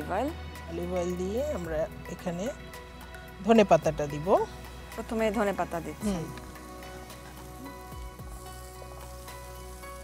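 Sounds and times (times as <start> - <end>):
leaves sizzling in oil: 0.0 - 10.0
soft background music: 0.0 - 10.0.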